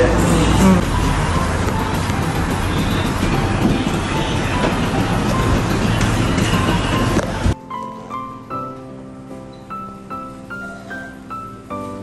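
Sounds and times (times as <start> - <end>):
loud rumbling noise: 0.0 - 7.6
faint music: 0.0 - 12.0
soft piano music: 0.0 - 12.0.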